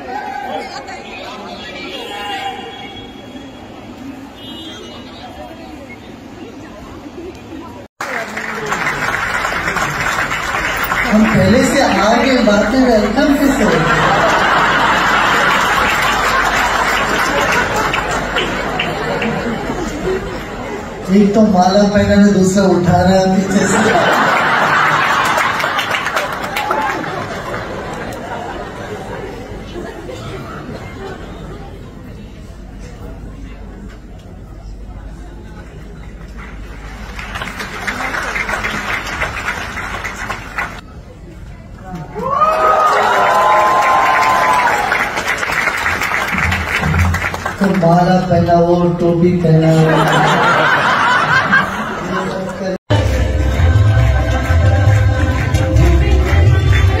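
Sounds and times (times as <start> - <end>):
crowd chatter: 0.0 - 42.2, 44.9 - 57.0.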